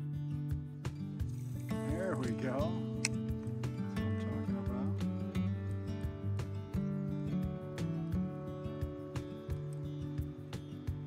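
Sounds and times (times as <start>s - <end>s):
background music held notes: 0.0s - 11.0s.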